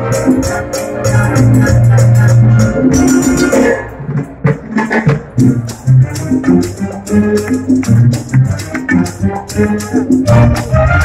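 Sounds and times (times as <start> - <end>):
symphony orchestra playing: 5.4 - 11.0.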